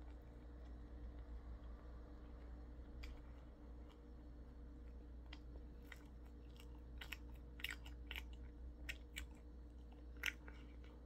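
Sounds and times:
steady low hum: 0:00.0 - 0:11.0
close chewing: 0:04.8 - 0:11.0.

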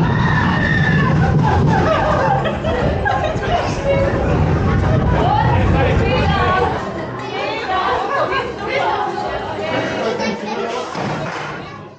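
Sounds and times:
indistinct chatter of voices: 0:00.0 - 0:11.9.

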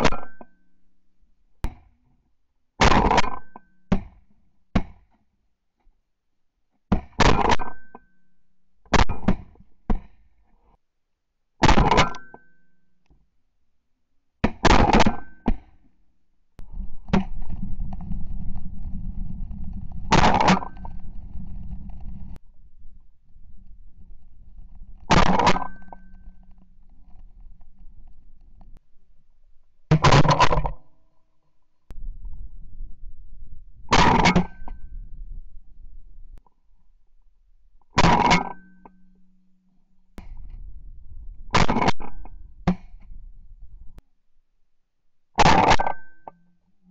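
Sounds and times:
low rumbling noise: 0:16.6 - 0:29.6, 0:31.9 - 0:36.4, 0:40.2 - 0:41.6.

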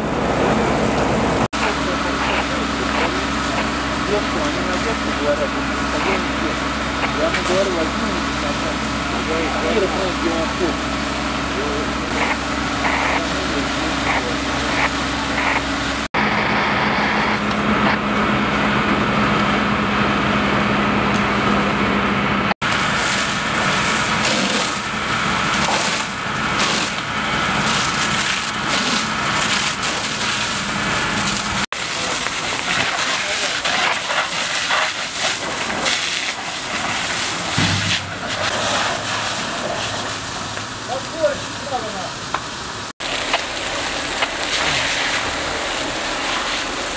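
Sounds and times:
fire engine running: 0:00.0 - 0:46.9
hose water jet spraying: 0:00.8 - 0:16.1, 0:22.6 - 0:46.9
hissing on burnt timbers: 0:12.1 - 0:15.6, 0:22.7 - 0:41.9, 0:43.0 - 0:46.9.

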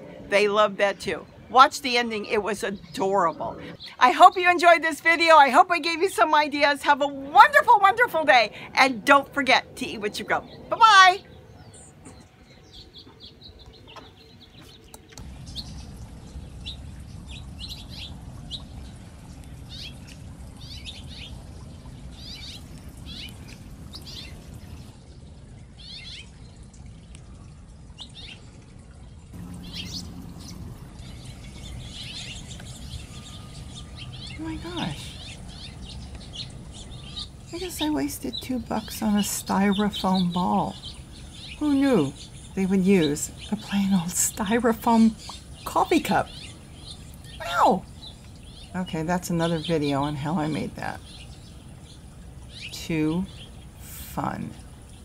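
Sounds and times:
fountain trickling water: 0:00.0 - 0:55.0
hummingbirds chirping: 0:00.0 - 0:55.0
low outdoor background: 0:00.0 - 0:55.0.

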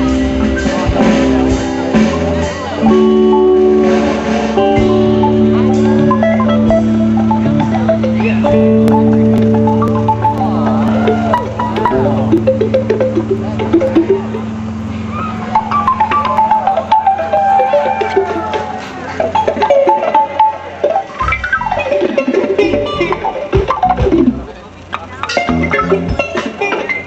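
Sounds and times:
acoustic guitar: 0:00.0 - 0:27.0
bass: 0:00.0 - 0:27.0
drums: 0:00.0 - 0:27.0.

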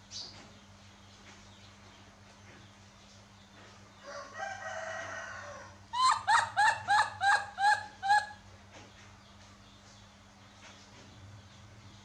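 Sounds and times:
infant monkey crying: 0:05.9 - 0:08.4.

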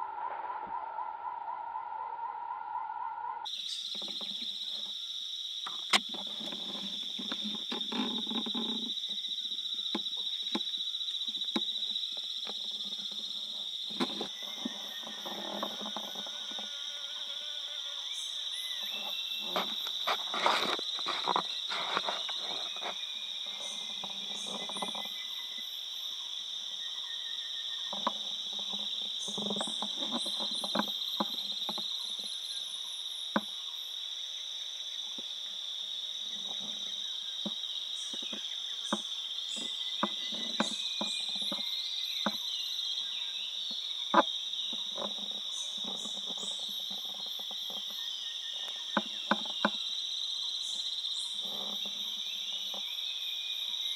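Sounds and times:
insects droning: 0:00.0 - 0:53.9
clicks and rustles: 0:19.4 - 0:23.0.

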